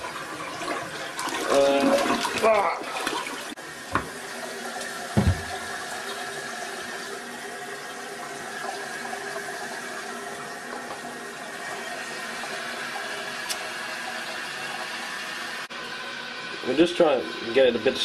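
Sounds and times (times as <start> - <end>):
toilet water running: 0.0 - 18.0.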